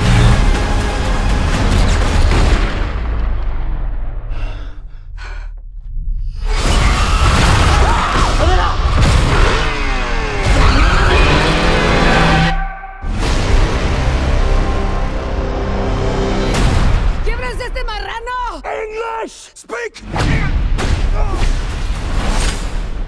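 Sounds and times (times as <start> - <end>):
cinematic trailer music: 0.0 - 19.0, 19.9 - 23.0.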